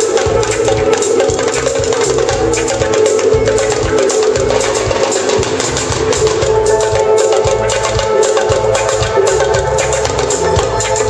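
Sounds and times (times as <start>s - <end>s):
drum kit: 0.0s - 11.0s
electric bass: 0.0s - 11.0s
electric guitar: 0.0s - 11.0s
keyboard sustained chords: 0.0s - 11.0s.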